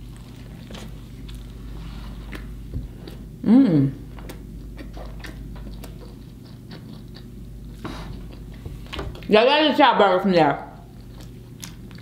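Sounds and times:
person chewing food: 0.0 - 9.3, 10.8 - 12.0.

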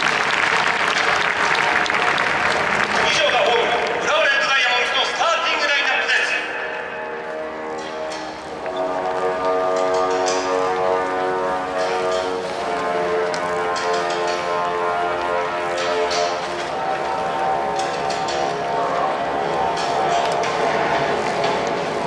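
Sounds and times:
slow melody over public address: 0.0 - 22.0
rustling noises: 7.1 - 22.0.

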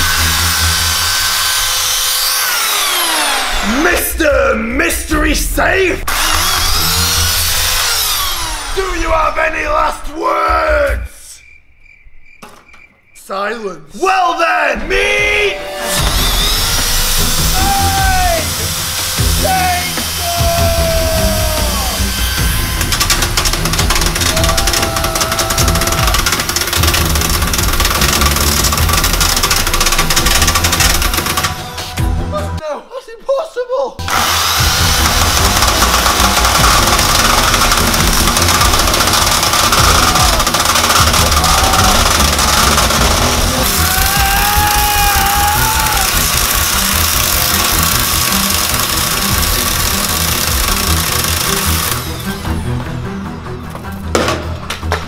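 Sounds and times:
chainsaw grinding on steel: 0.0 - 3.8, 6.1 - 9.0, 15.6 - 32.0, 34.0 - 52.8
music playing: 0.0 - 11.2, 14.2 - 32.9, 34.0 - 55.0.

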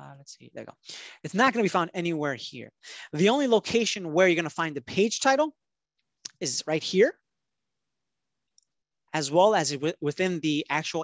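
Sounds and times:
person speaking: 0.0 - 5.6.

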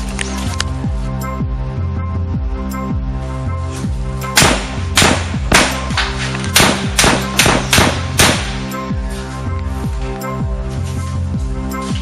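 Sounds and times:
background music: 0.0 - 12.0
gunshots: 4.4 - 8.8.

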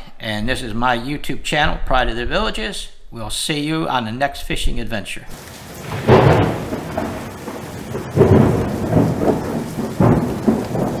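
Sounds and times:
steady rain: 5.3 - 11.0
thunder rolling: 5.4 - 11.0.

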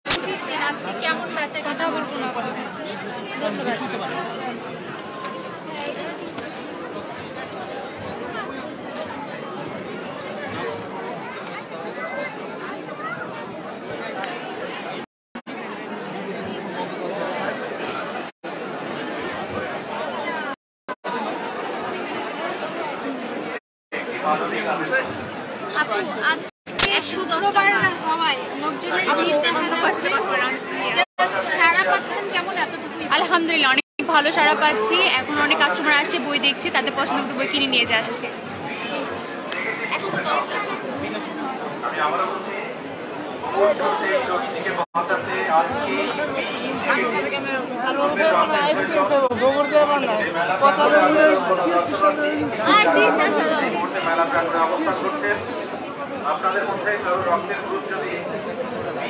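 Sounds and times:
crowd chatter: 0.0 - 59.0
woman talking: 32.4 - 38.3.

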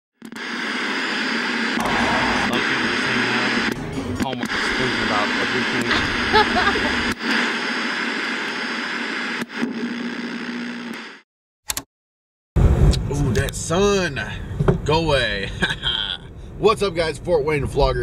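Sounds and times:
static hiss: 0.4 - 9.4
low hum: 1.8 - 7.2
low rumble: 1.8 - 7.2.

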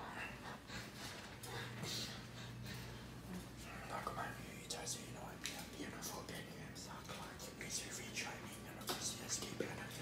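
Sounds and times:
low steady hum: 0.0 - 10.0
faint whispered speech: 3.3 - 10.0.

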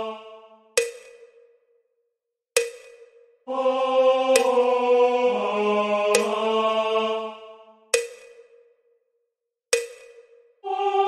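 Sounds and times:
sharp percussive tick with ring: 0.8 - 1.8, 2.5 - 3.4, 4.4 - 4.6, 6.2 - 6.4, 8.0 - 9.0, 9.7 - 10.6.

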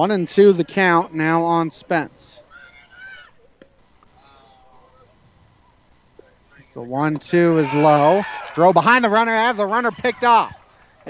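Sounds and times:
distant high-pitched voices calling: 2.4 - 6.7.

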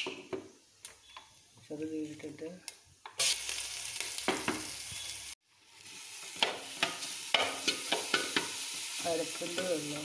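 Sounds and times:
food sizzling in hot oil: 3.0 - 10.0.

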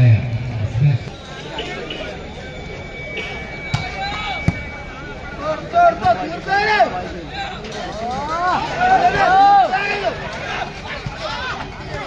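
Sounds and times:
crowd voices: 0.0 - 12.0
volleyball bouncing on court: 3.7 - 4.7.

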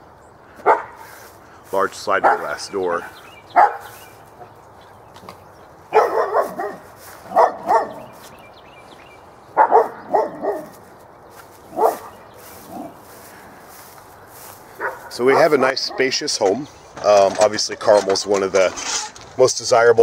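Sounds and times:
dog barking: 0.6 - 1.0, 2.2 - 4.0, 5.9 - 8.2, 9.6 - 10.8, 11.7 - 12.9, 14.8 - 16.0.

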